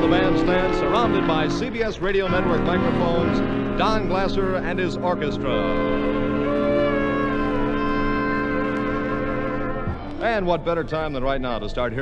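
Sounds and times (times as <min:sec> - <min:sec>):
big band holding chord: 0:00.0 - 0:11.2.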